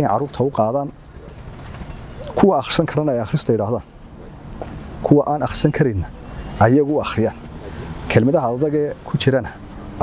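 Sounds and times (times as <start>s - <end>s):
man speaking: 0.0s - 1.0s, 2.3s - 3.9s, 5.0s - 7.4s, 8.1s - 9.6s
dove cooing: 0.9s - 8.1s.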